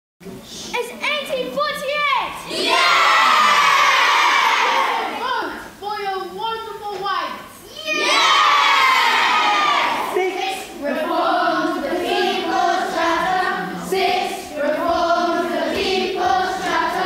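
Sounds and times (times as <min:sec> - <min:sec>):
children shouting and cheering: 0:01.6 - 0:05.6, 0:07.6 - 0:10.6.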